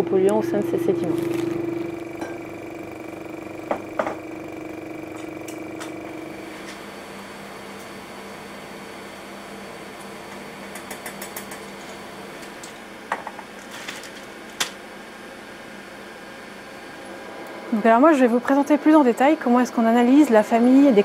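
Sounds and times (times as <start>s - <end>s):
laboratory equipment hum: 0.0s - 21.0s.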